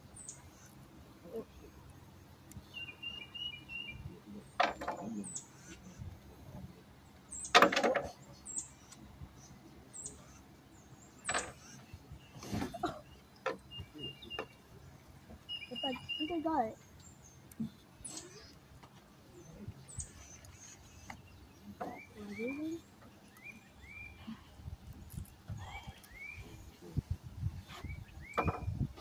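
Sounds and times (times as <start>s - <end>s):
small birds chirping: 0.0s - 29.0s.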